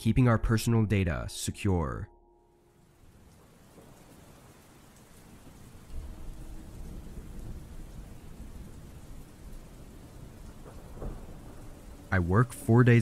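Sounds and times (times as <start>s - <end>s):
steady rain falling: 2.6s - 13.0s
low rumble of thunder: 3.1s - 13.0s.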